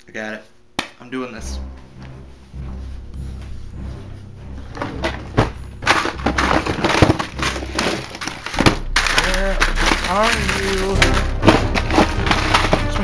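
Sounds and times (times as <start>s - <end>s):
objects knocking about: 4.6s - 13.0s
plastic packaging crinkling: 5.8s - 13.0s.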